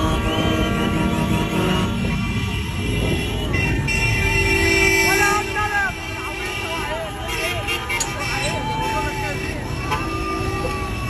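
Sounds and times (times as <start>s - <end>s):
moving vehicle running: 0.0s - 11.0s
road traffic: 0.0s - 11.0s.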